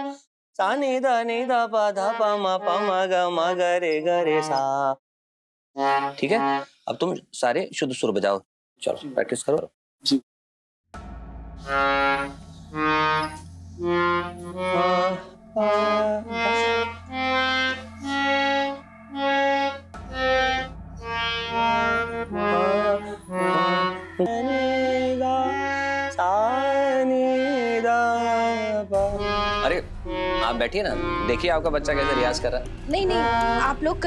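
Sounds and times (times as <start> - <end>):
harmonium notes: 1.4 - 4.6, 5.8 - 6.7, 11.6 - 34.0
low drone: 11.0 - 34.0.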